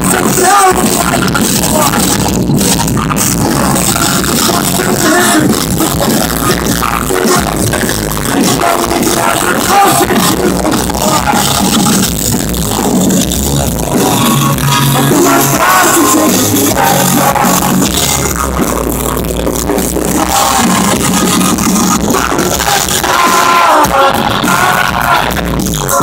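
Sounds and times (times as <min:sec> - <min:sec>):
live pop-punk band: 0:00.0 - 0:26.0.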